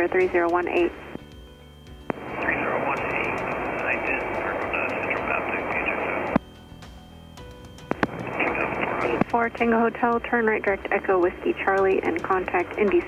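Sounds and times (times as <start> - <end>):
low intercom hum: 0.0 - 6.5, 7.9 - 13.0
static hiss: 0.4 - 6.8, 7.5 - 9.4
radio voice: 2.2 - 6.4, 8.2 - 13.0
radio click: 7.8 - 9.4.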